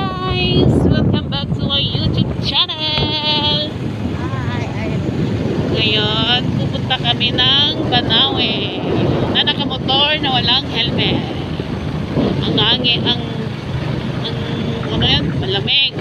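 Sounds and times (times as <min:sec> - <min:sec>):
woman speaking: 0:00.0 - 0:05.0, 0:05.7 - 0:11.6, 0:12.2 - 0:13.6, 0:14.2 - 0:16.0
vehicle running noise: 0:00.0 - 0:16.0
wind buffeting microphone: 0:00.0 - 0:16.0.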